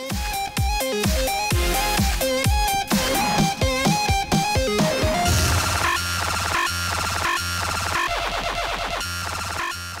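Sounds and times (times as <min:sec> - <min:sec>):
electronic music with pulsing bass: 0:00.0 - 0:10.0.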